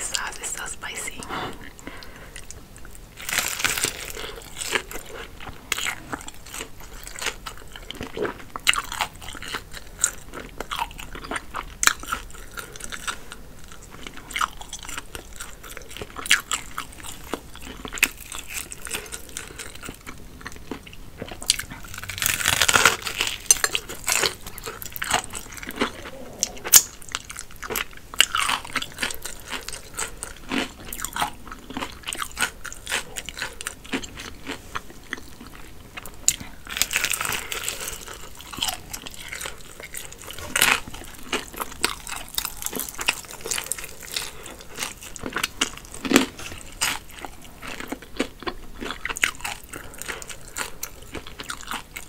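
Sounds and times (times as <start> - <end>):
chewing crispy chicken: 0.1 - 52.0.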